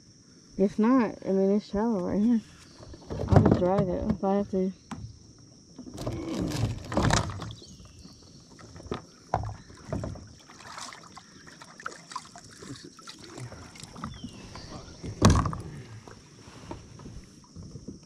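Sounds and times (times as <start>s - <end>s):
water against hull: 2.0s - 18.0s
knocks in plastic kayak: 5.8s - 10.8s, 15.0s - 15.7s.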